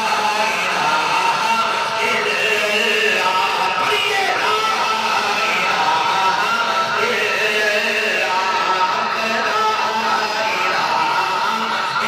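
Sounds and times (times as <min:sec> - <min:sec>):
men chanting: 0:00.0 - 0:12.0.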